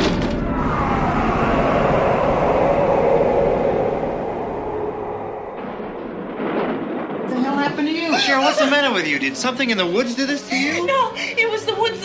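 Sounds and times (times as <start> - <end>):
dense rumbling roar: 0.0 - 7.8
eerie held tone: 0.3 - 6.7.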